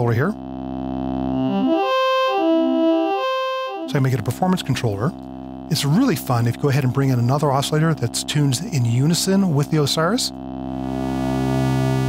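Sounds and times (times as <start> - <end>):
synthesizer tone stepping in pitch: 0.0 - 12.0.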